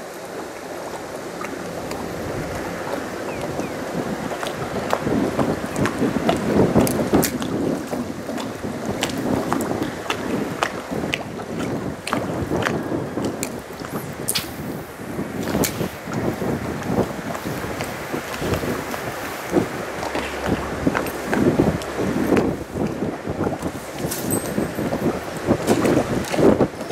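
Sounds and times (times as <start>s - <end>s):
water lapping at boat hull: 0.0s - 26.9s
wind buffeting microphone: 0.0s - 26.9s.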